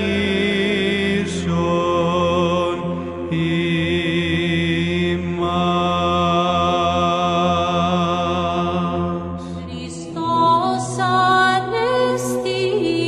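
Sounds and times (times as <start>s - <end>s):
steady low drone: 0.0s - 13.0s.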